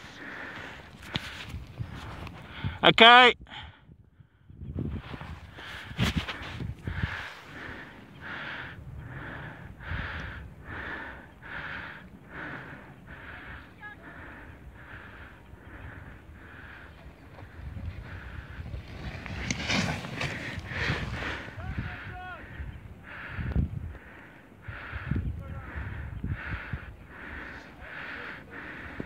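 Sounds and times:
rapid heavy breathing: 0:00.0 - 0:02.8, 0:05.5 - 0:29.0.

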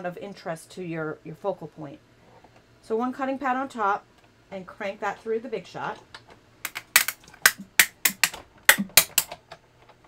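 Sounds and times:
die-cutting machine snapping: 0:06.7 - 0:09.4.

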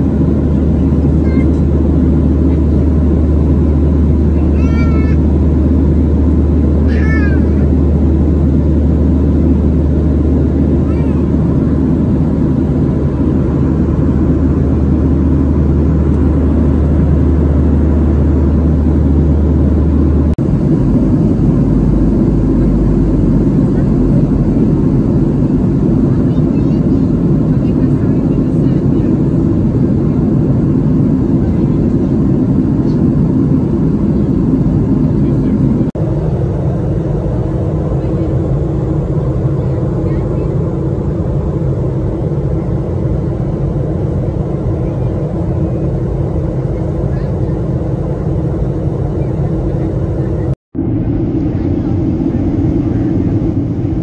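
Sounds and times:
airflow rush in aircraft cabin: 0:00.0 - 0:54.0
jet engine drone: 0:00.0 - 0:54.0.

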